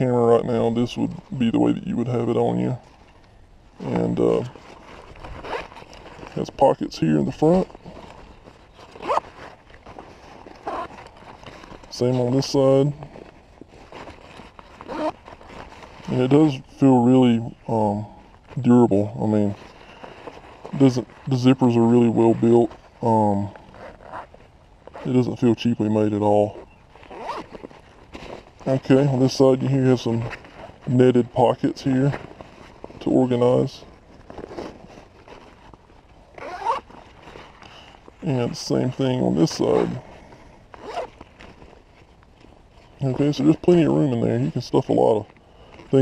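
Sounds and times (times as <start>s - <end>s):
fabric pack rustling: 0.0s - 46.0s
zipper and strap clicks: 3.8s - 6.6s, 7.6s - 16.3s, 23.5s - 25.2s, 26.6s - 28.6s, 33.8s - 38.2s, 39.6s - 41.8s.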